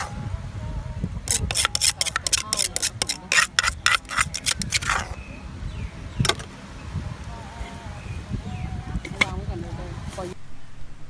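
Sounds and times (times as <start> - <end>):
plastic spoon scraping a mortar: 1.3 - 5.2.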